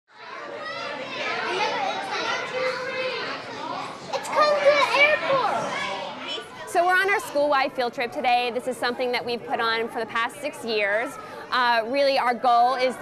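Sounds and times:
young children talking and calling out: 0.2s - 7.7s, 9.5s - 13.0s.

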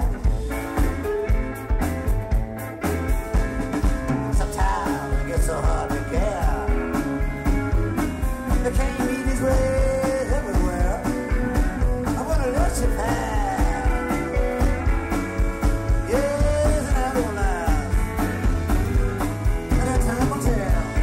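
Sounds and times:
bending sliding guitar notes: 0.0s - 21.0s
live rock band playing: 0.0s - 21.0s
steady drum beat: 0.0s - 21.0s.

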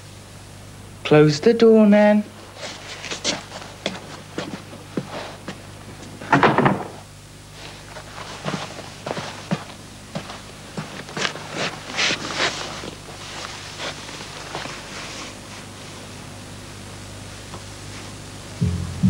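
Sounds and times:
footsteps in a room: 2.3s - 16.6s
door being shut: 6.3s - 7.0s.

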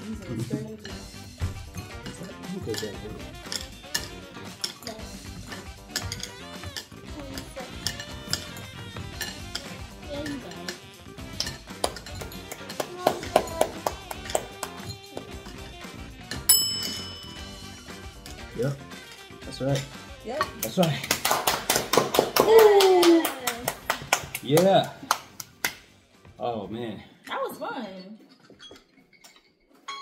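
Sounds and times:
background music: 0.0s - 28.7s
hard candies clinking: 0.9s - 20.8s
bright ringing chime: 16.5s - 17.9s.

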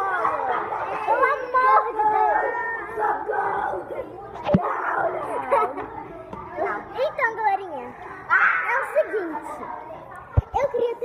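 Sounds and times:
children shouting: 0.0s - 11.0s.

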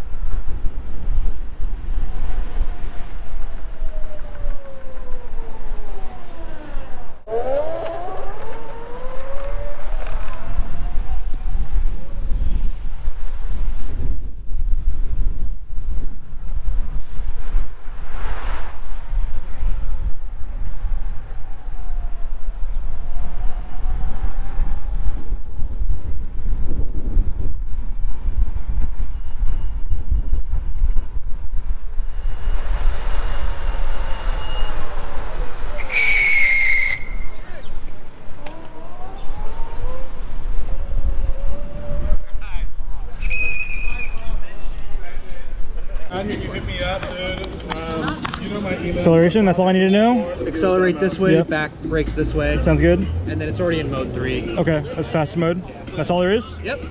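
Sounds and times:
wind buffeting microphone: 0.0s - 36.0s, 36.8s - 49.4s
street traffic: 0.0s - 56.9s
short high whistle-like tone: 33.0s - 35.0s, 35.7s - 37.4s, 43.2s - 44.3s.

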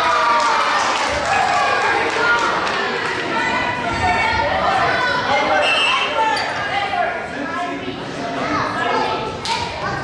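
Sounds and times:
people calling out in a gym: 0.0s - 10.0s.

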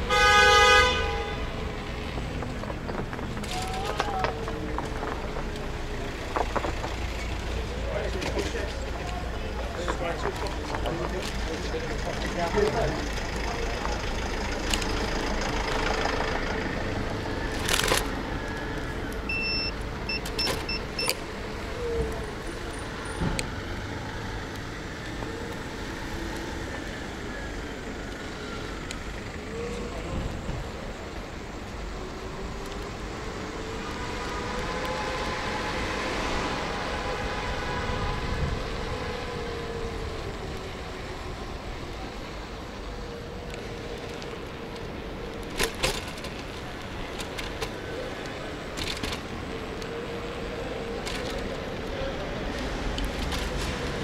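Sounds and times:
cars and vans passing: 0.0s - 54.0s
short electronic beeps: 19.3s - 21.1s.

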